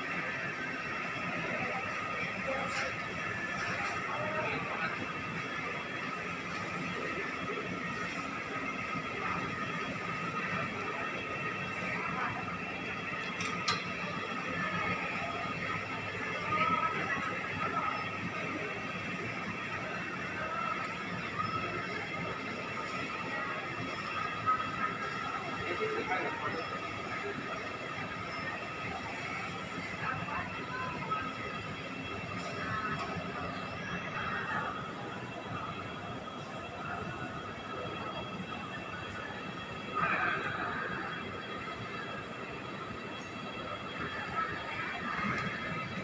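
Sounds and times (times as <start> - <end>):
faint indistinct voices: 0.0 - 46.0
supermarket hum and murmur: 0.0 - 46.0.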